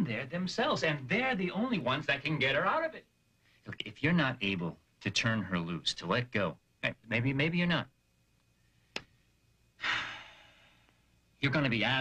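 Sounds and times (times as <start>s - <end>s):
man sighing: 9.8s - 10.7s.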